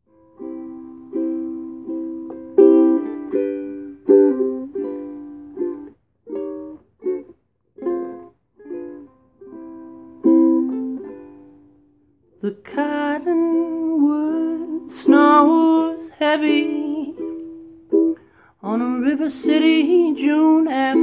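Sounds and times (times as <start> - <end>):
ukulele strumming chords: 0.0 - 21.0.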